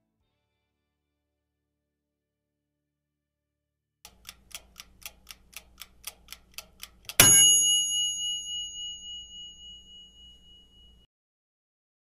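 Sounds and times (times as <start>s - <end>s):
clock ticking: 4.1s - 7.9s
bell ding: 7.2s - 11.1s.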